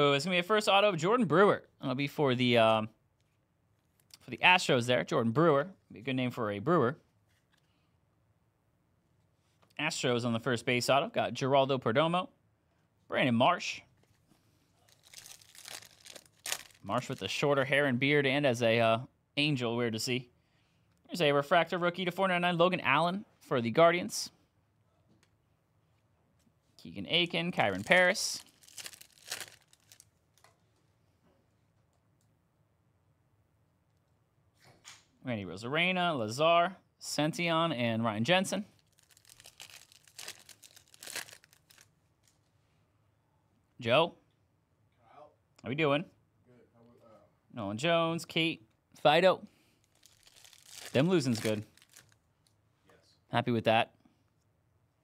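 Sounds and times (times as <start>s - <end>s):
foil wrapper crinkling and tearing: 14.9s - 17.2s, 27.6s - 30.4s, 38.8s - 42.4s, 49.8s - 52.2s.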